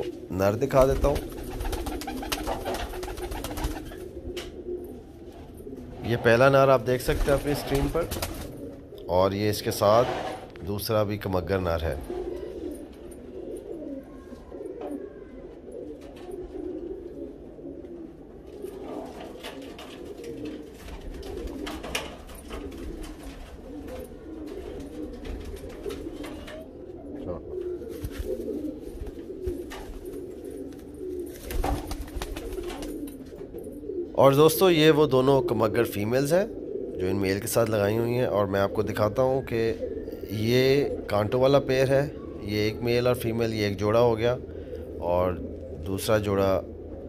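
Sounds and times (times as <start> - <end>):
pigeons cooing: 0.0 - 47.0
pigeon wingbeats: 0.7 - 4.5, 7.1 - 8.6, 18.6 - 26.6, 27.6 - 33.4.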